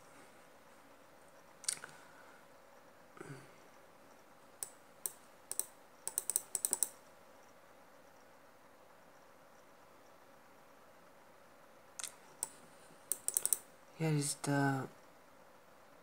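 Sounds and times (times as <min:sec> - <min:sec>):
computer keyboard keys clicking: 0:04.6 - 0:07.0, 0:12.0 - 0:13.6.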